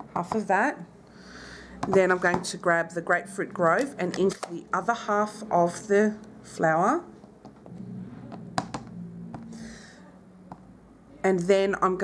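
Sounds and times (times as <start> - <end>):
faint low hum: 3.0 - 12.0.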